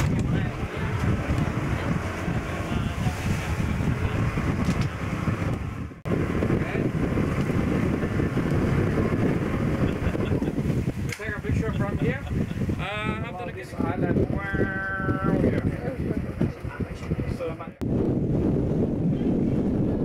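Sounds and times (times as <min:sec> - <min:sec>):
motorboat running: 0:00.0 - 0:20.0
wind buffeting microphone: 0:00.0 - 0:20.0.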